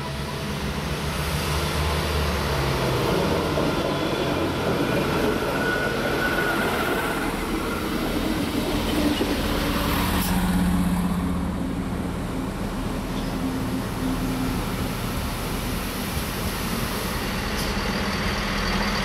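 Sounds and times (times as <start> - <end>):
low steady hum of train: 0.0 - 19.0
train running past: 0.0 - 19.0.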